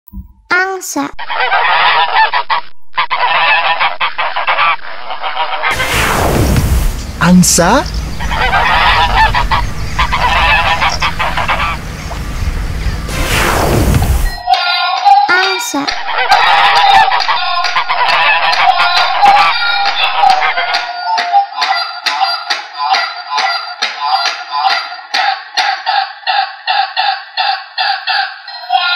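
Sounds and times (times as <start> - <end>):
geese honking: 1.2 - 5.8, 7.2 - 13.1, 16.0 - 20.9, 24.1 - 28.9
whoosh sound effect: 5.7 - 14.4
toy speaker playing goose honks: 25.9 - 28.9.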